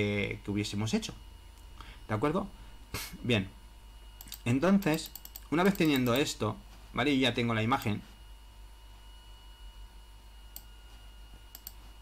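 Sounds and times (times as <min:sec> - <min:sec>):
faint electrical hum: 0:00.0 - 0:12.0
computer mouse clicks: 0:04.2 - 0:06.3, 0:11.5 - 0:11.8.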